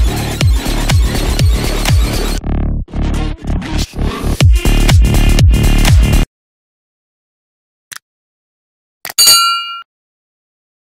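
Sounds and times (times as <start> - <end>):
bright bell ding: 9.2 - 9.9.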